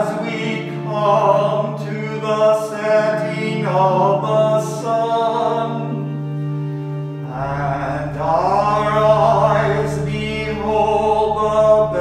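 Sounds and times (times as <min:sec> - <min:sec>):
man singing: 0:00.0 - 0:06.0, 0:07.3 - 0:12.0
pipe organ chord: 0:00.0 - 0:12.0.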